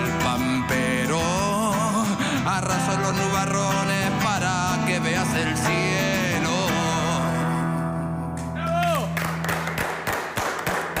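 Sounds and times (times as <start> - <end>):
people clapping: 8.4 - 11.0.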